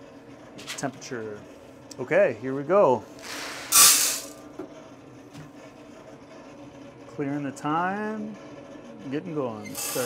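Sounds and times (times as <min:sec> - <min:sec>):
coffee roaster humming: 0:00.0 - 0:10.0
coffee beans pouring into hopper: 0:03.2 - 0:04.4.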